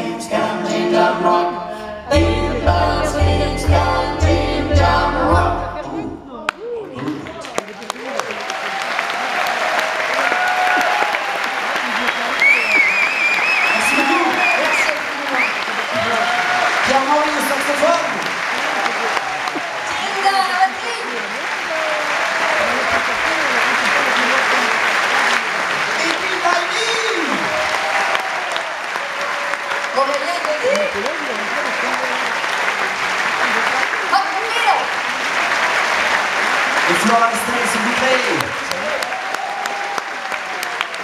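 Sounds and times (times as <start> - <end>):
audience applauding: 6.5 - 41.0.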